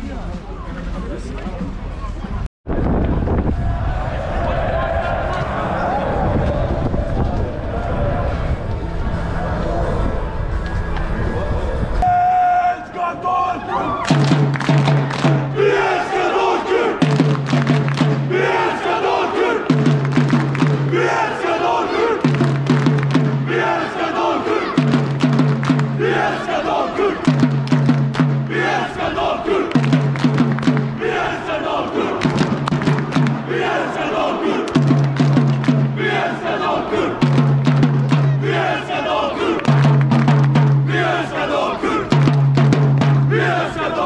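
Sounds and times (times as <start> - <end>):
crowd chanting in unison: 3.3 - 8.7, 14.8 - 44.0
marching drum beats: 14.1 - 44.0.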